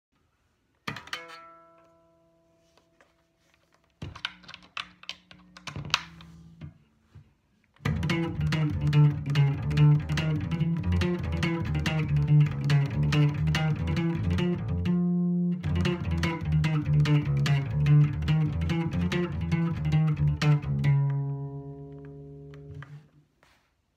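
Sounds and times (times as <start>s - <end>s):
electric bass guitar plucked: 5.6s - 6.8s, 7.8s - 23.2s.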